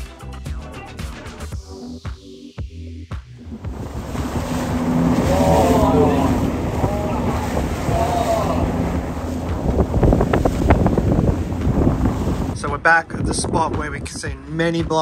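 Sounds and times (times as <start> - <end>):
motorboat engine hum: 3.3 - 14.8
hull slapping water: 3.4 - 15.0
wind buffeting microphone: 3.5 - 15.0.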